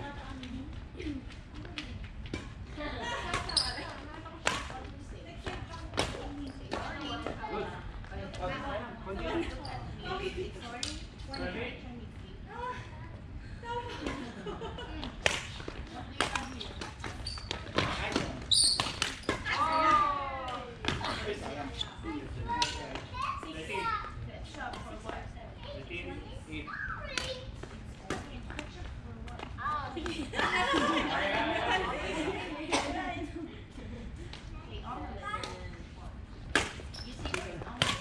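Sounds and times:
players calling and shouting: 15.4s - 24.2s
rackets striking shuttlecock: 17.6s - 19.5s, 36.5s - 38.0s.

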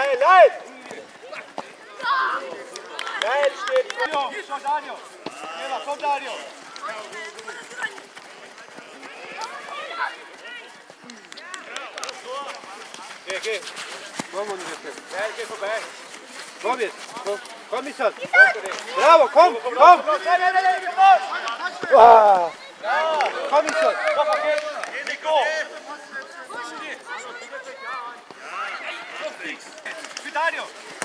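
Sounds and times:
people shouting: 18.4s - 24.3s.

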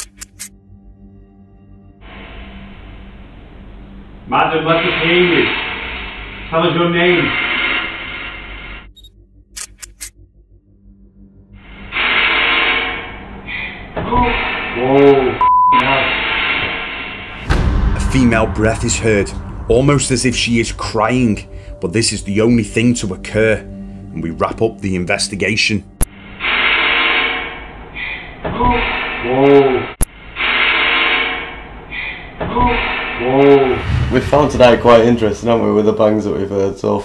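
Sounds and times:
sharp click: 0.0s - 0.5s, 9.0s - 10.2s.

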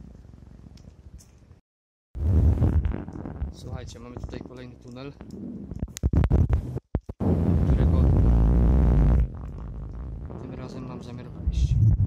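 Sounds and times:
handling rumble on camera microphone: 2.2s - 12.0s.

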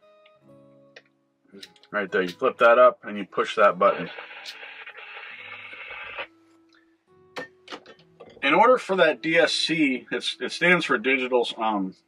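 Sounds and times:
radio static hiss: 3.4s - 6.4s.

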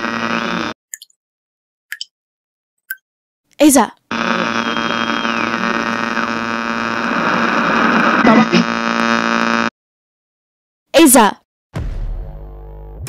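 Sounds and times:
loud electric buzzing hum: 0.0s - 0.8s, 4.1s - 9.7s, 12.2s - 13.0s
noisy jumble: 0.0s - 0.8s, 4.1s - 9.7s.

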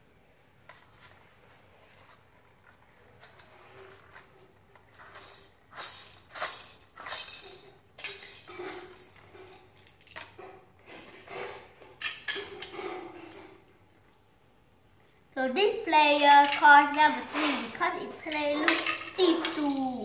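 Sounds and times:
plastic toy pieces clicking: 4.9s - 10.3s, 16.4s - 20.0s.

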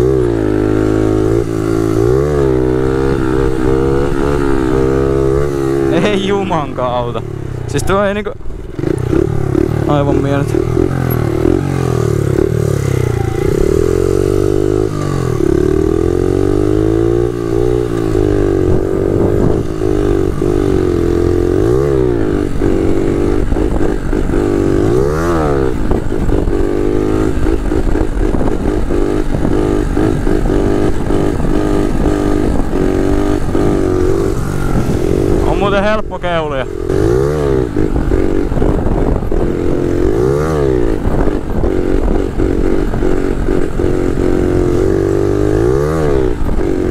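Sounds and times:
minibike engine revving: 0.0s - 46.9s.

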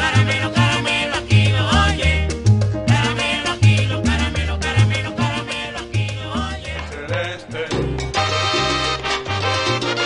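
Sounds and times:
salsa music: 0.0s - 10.0s.

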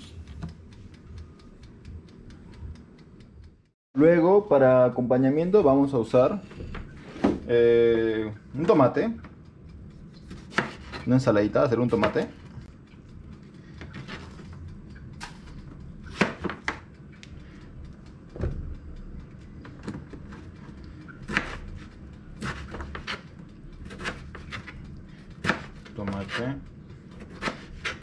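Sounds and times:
steady low hum: 0.0s - 28.0s.

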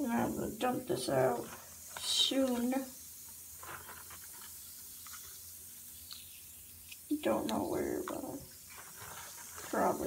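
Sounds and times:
bath bomb fizzing: 0.0s - 10.0s.

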